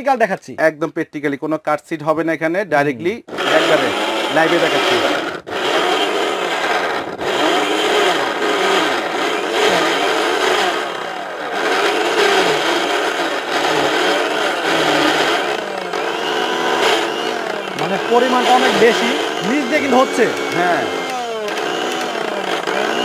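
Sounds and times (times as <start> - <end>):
mixer grinder motor running: 3.3 - 23.0.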